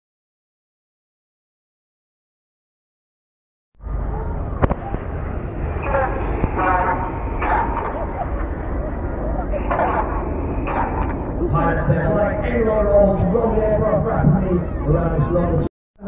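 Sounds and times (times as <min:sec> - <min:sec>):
low rumble: 0:03.8 - 0:15.7
man's voice over loudspeaker: 0:05.7 - 0:08.2, 0:09.5 - 0:15.7.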